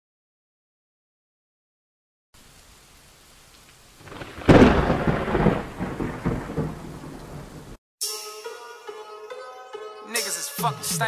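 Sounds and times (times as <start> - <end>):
faint rain hiss: 2.4 - 7.8
thunderclap rumbling: 4.0 - 7.8.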